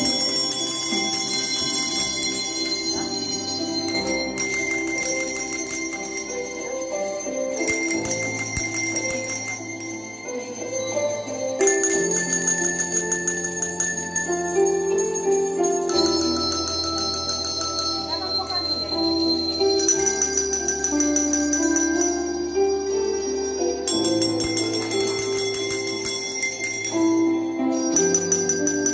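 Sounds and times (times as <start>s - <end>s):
desk bells ringing: 0.0s - 28.9s
slow instrumental backing track: 0.0s - 28.9s.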